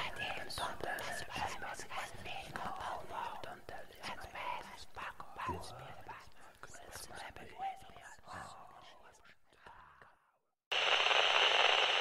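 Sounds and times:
whispering voices: 0.0 - 10.0.

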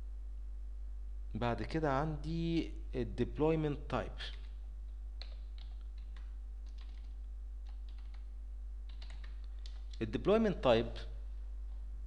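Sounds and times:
low electrical hum: 0.0 - 12.0
keyboard keys clicking: 5.2 - 8.2, 8.9 - 10.0.

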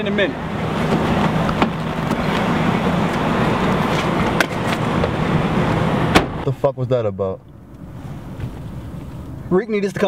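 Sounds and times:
traffic noise with low hum: 0.0 - 10.0.

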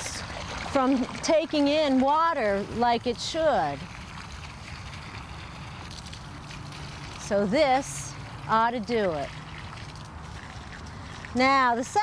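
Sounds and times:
water running from a hose: 0.0 - 12.0.

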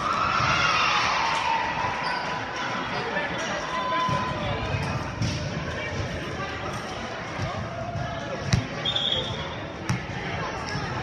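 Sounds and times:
players chatter: 0.0 - 11.0
volleyball impacts echoing: 7.2 - 8.9, 9.8 - 11.0.

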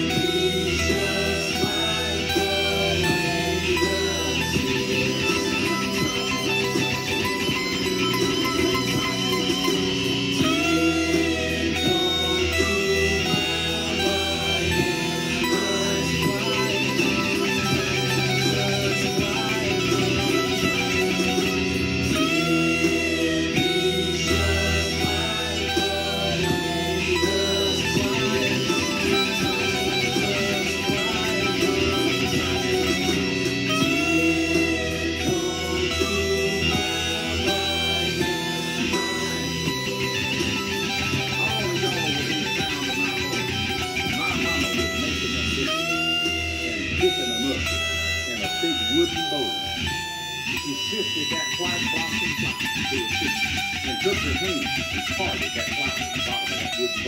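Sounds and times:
electric guitar playing: 0.0 - 57.0
recorded song with vocals: 0.0 - 57.0.

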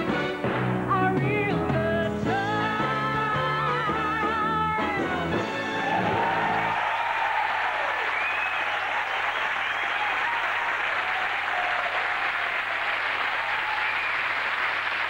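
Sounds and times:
audience applauding: 5.6 - 15.0.

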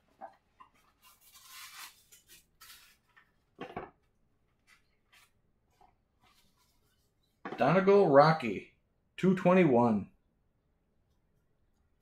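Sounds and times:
paper rustling: 0.1 - 3.6.

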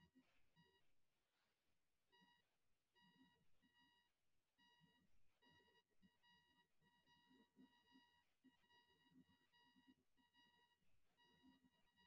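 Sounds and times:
faint electronic beep: 0.0 - 0.8, 2.1 - 2.4, 3.0 - 12.0.

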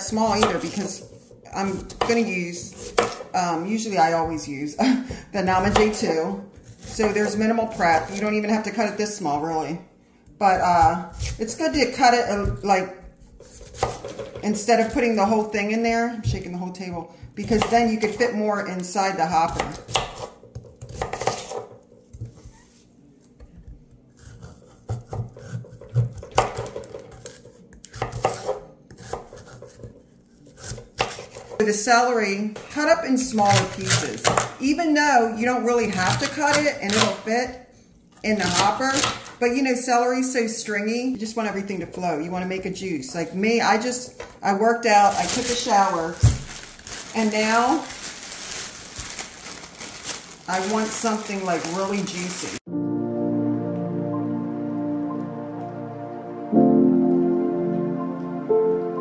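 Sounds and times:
plastic bag rustling: 44.9 - 52.6.

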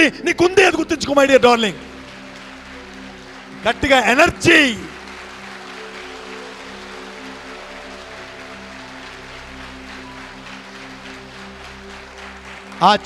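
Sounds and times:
soft sustained music tones: 0.0 - 13.0.

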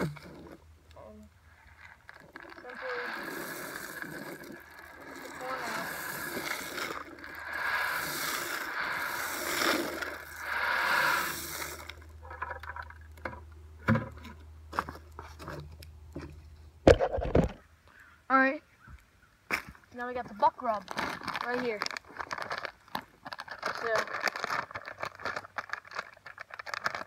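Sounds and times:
corn kernels pouring from bucket: 1.7 - 12.9, 23.6 - 27.0.

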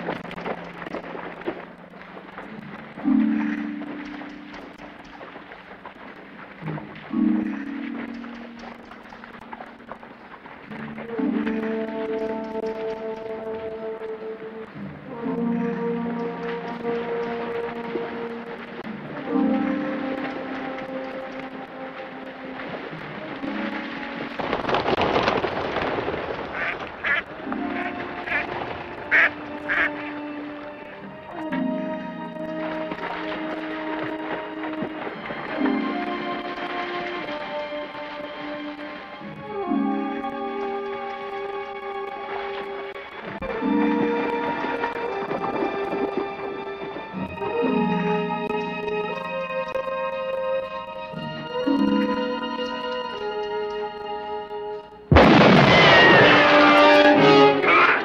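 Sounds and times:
orchestral film music: 0.0 - 58.0.

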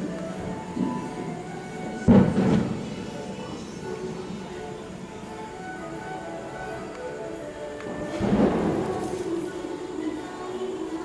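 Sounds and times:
faint background music: 0.0 - 11.0
distant firecracker boom: 2.1 - 3.0, 8.0 - 9.3.

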